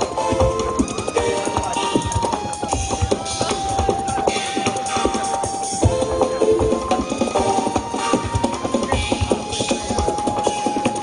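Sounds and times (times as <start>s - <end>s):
fast drum strokes: 0.0s - 11.0s.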